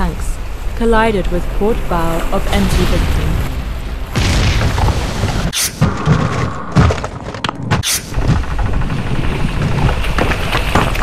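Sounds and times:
rumbling steel crash: 2.8s - 11.0s.

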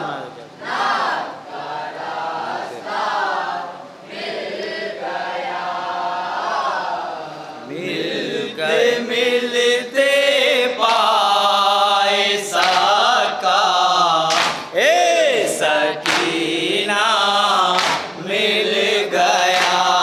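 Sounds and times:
men chanting a mourning lament: 4.6s - 20.0s.

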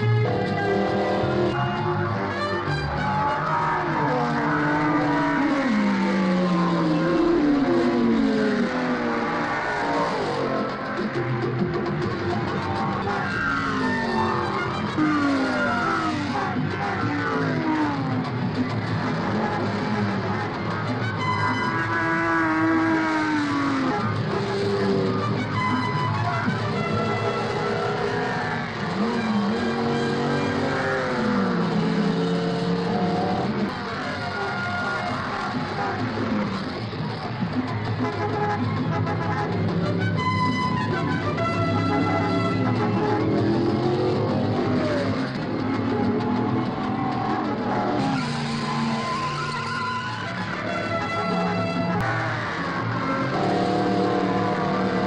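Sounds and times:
music: 0.0s - 55.0s
racing car engines passing: 0.0s - 55.0s.

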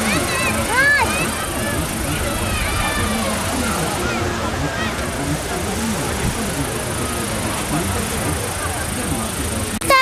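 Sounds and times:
babble of many people talking: 0.0s - 10.0s
steady high hiss: 0.0s - 10.0s.

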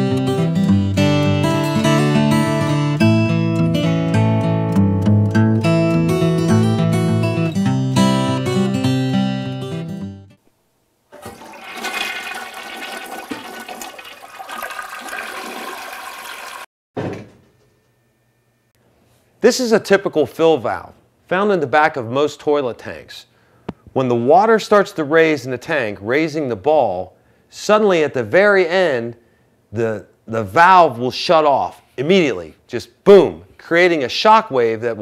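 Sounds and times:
acoustic guitar music: 0.0s - 10.4s
toilet flushing: 11.1s - 16.7s.

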